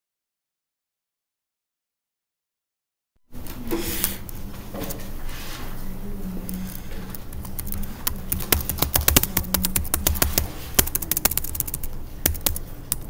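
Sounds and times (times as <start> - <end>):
typing on computer keyboard: 6.5 - 13.0.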